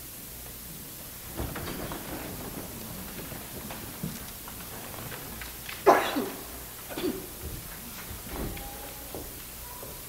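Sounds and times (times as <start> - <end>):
person sneezing: 5.9 - 7.3.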